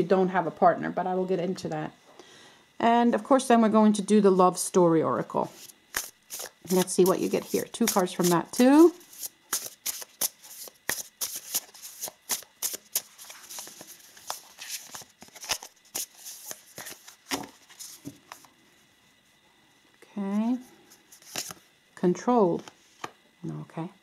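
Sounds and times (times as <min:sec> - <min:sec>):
cards being shuffled: 0:05.5 - 0:18.5, 0:21.1 - 0:21.6.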